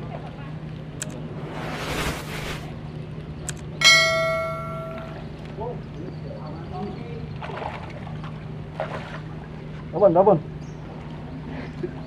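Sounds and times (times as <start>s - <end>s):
small metal bell ringing: 3.8s - 5.2s.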